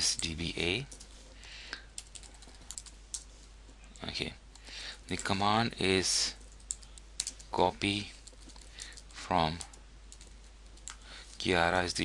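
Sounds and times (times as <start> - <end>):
faint background hiss: 0.0 - 12.0
computer keyboard typing: 0.1 - 1.1, 2.0 - 3.3, 6.4 - 11.0.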